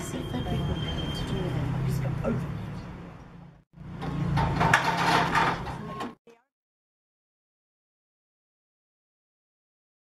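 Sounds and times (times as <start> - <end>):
metal scaffolding clattering: 4.0 - 6.2.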